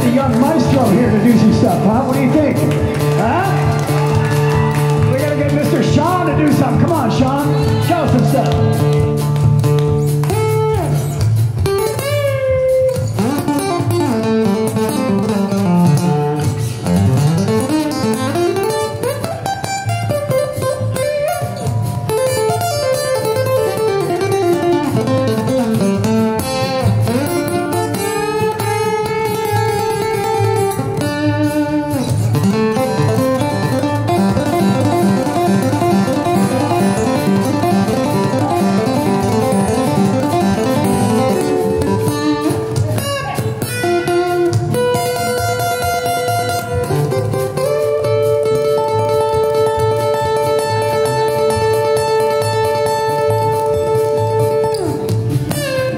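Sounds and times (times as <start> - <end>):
upright bass: 0.0 - 17.8, 29.7 - 51.0
acoustic guitar lead: 0.0 - 55.9
band accompaniment: 0.0 - 55.9.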